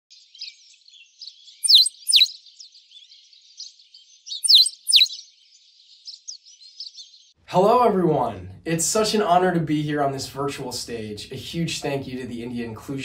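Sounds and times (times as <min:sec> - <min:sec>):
small high bird chirps: 0:00.1 - 0:07.4
falling whistled bird calls: 0:00.3 - 0:07.1.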